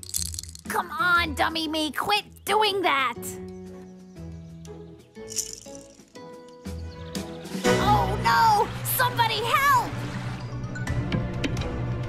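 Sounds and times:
baby rattle shaken: 0.0s - 0.7s, 5.3s - 6.2s
light background music: 0.0s - 12.0s.

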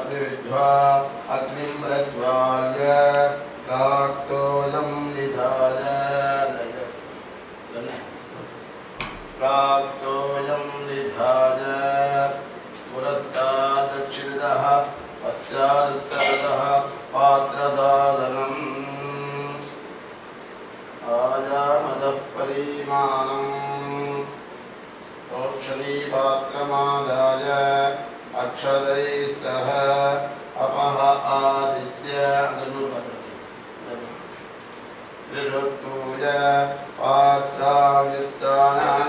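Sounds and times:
men chanting: 0.0s - 7.0s, 9.4s - 19.8s, 21.0s - 24.4s, 25.3s - 33.4s, 35.3s - 39.0s
sharp metallic clink: 16.1s - 16.6s.

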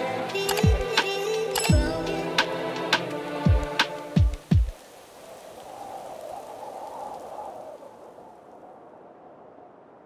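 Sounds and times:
soft rain-like hiss: 0.0s - 9.8s.

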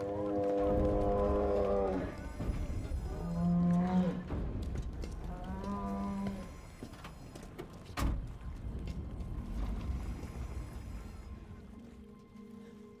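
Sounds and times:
deep rumble: 8.0s - 13.0s.

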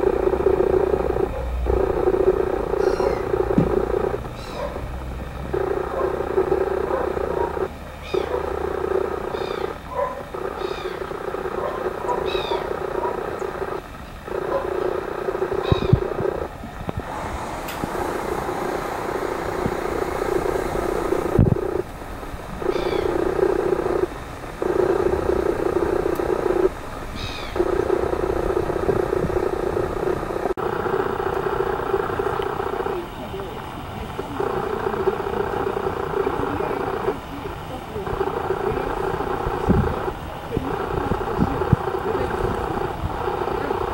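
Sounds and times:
steady low hum: 0.0s - 43.9s
birds giving short falling calls: 2.8s - 3.4s, 9.3s - 9.8s, 10.5s - 13.5s, 22.7s - 23.2s, 27.2s - 27.6s.

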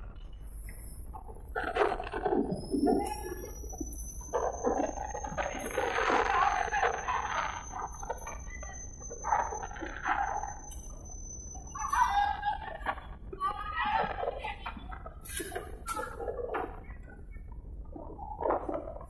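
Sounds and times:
thin high whine: 0.6s - 14.2s.

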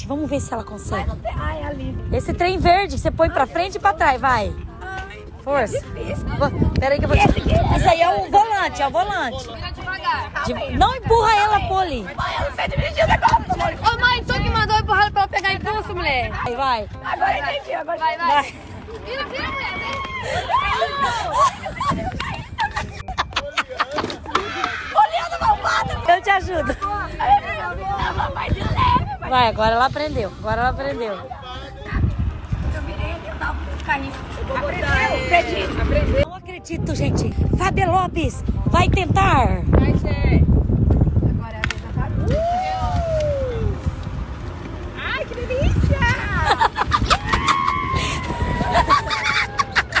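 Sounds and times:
hard wheels scraping over asphalt: 17.0s - 22.9s
women laughing hard: 20.1s - 25.1s, 46.2s - 50.0s.

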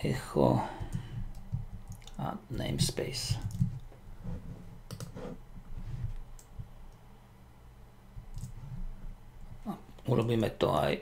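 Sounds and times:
low room hum: 0.0s - 11.0s
computer keyboard keystrokes: 3.4s - 3.8s, 4.9s - 5.1s.

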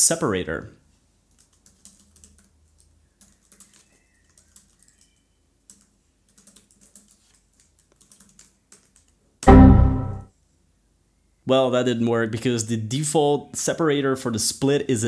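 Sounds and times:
typing on computer keyboard: 1.3s - 9.2s.

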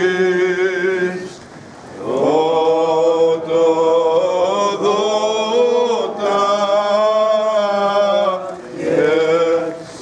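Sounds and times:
voices chanting: 2.0s - 10.0s.

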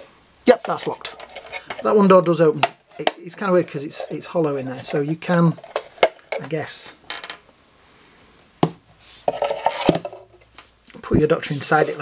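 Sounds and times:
plastic toy rustling: 0.6s - 2.0s, 3.9s - 6.6s
plastic rubbing and knocking: 9.2s - 10.4s.

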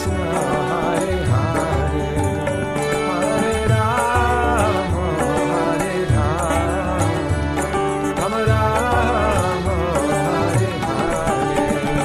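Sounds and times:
person chanting a melody: 0.0s - 12.0s.

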